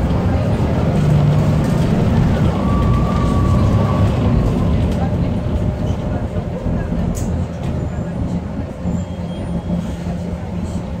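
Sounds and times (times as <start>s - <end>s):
bus diesel engine drone: 0.0s - 11.0s.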